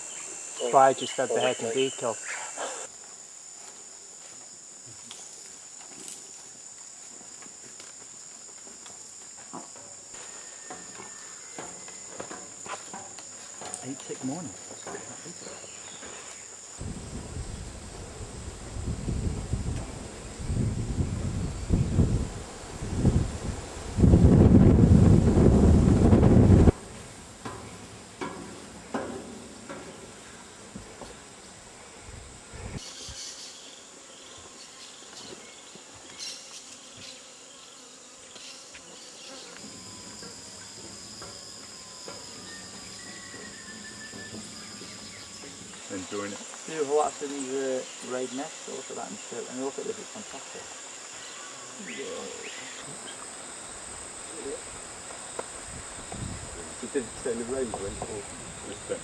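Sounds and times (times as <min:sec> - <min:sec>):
insects buzzing high-pitched: 0:00.0 - 0:59.0
wind gusts on microphone: 0:16.8 - 0:26.9, 0:32.0 - 0:32.8, 0:55.5 - 0:57.2.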